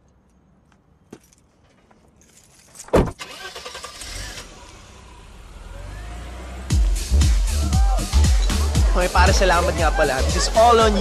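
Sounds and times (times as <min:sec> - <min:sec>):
car door shutting: 0:02.9 - 0:03.4
car engine starting and running: 0:03.0 - 0:09.7
dance music bass beat: 0:06.7 - 0:11.0.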